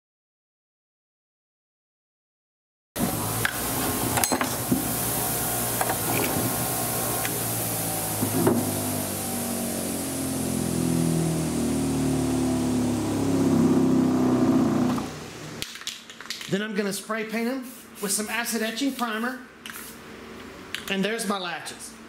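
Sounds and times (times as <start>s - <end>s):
bench grinder motor humming: 3.2s - 15.2s.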